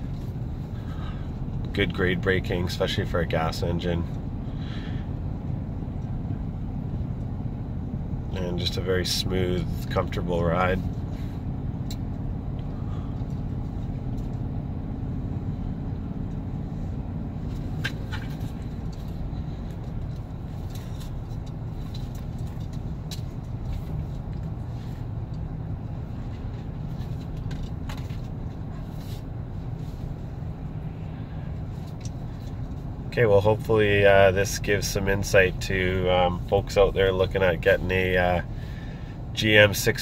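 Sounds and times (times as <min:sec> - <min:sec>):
engine and road noise hum: 0:00.0 - 0:40.0.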